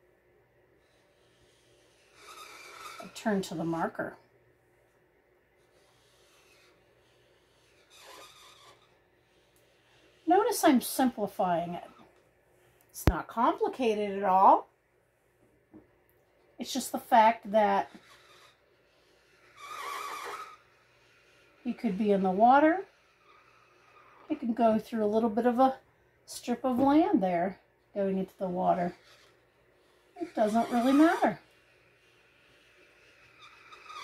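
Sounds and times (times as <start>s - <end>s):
marker rubbing on paper: 1.0s - 3.2s, 5.7s - 11.1s, 17.9s - 21.6s, 22.9s - 24.3s, 28.8s - 34.0s.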